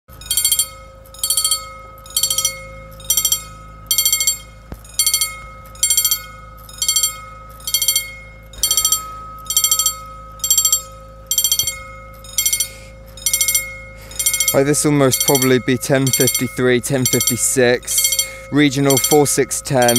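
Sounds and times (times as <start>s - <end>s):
level crossing bell ringing: 0.1s - 19.9s.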